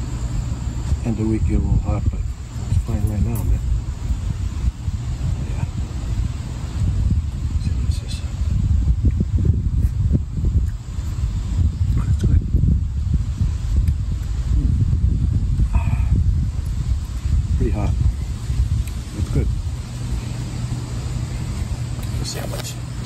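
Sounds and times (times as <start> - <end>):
wind rumble on microphone: 0.0 - 23.0.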